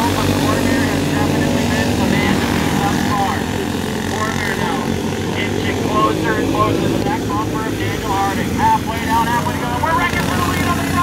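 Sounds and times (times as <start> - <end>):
go-kart engines droning: 0.0 - 11.0.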